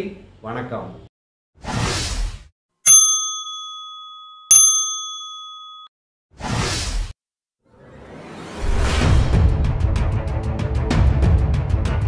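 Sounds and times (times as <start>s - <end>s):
bright bell dings: 2.9s - 5.9s
whoosh: 7.7s - 10.2s.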